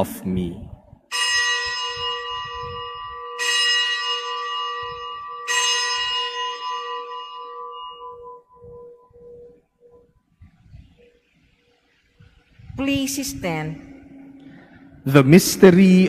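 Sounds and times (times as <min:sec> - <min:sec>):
altar bell ringing: 0:01.1 - 0:10.2, 0:12.8 - 0:16.0.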